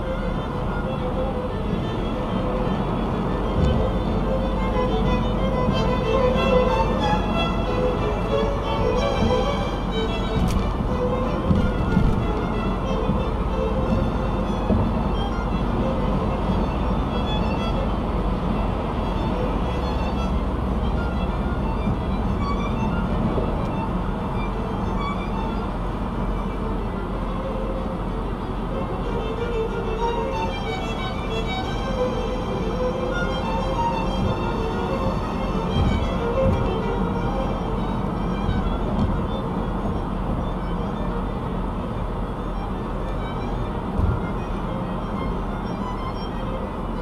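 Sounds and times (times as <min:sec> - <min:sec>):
car road noise inside cabin: 0:00.0 - 0:47.0
low thump: 0:10.3 - 0:12.4, 0:35.7 - 0:36.8
music playing: 0:28.9 - 0:41.7.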